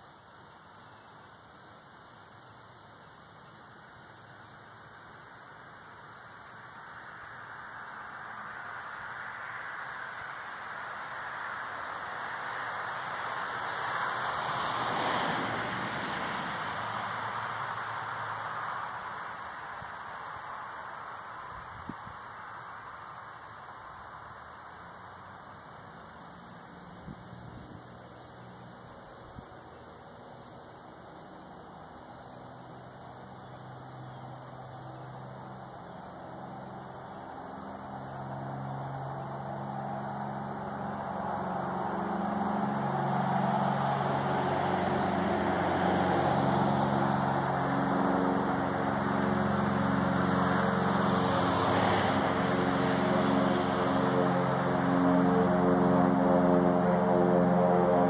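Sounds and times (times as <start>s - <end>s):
insects chirring: 0.0s - 58.0s.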